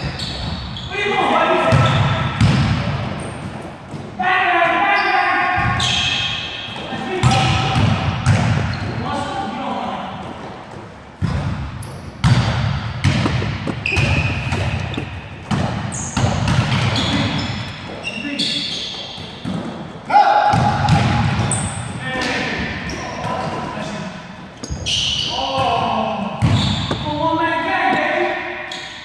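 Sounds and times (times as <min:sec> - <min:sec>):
basketball bouncing on hardwood floor: 0:07.2 - 0:08.9, 0:10.3 - 0:18.0, 0:26.4 - 0:27.1.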